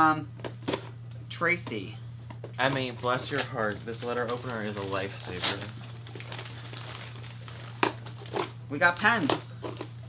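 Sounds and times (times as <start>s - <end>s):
paper and packaging crinkling: 2.6s - 10.0s.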